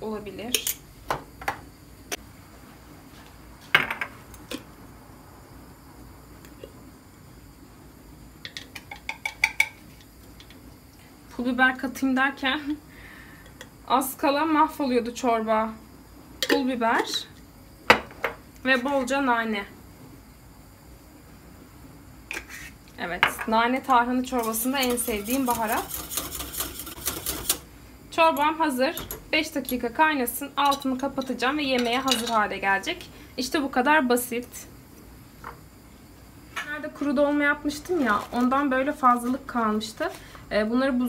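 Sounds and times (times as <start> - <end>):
saucepan clatter: 24.4 - 27.6.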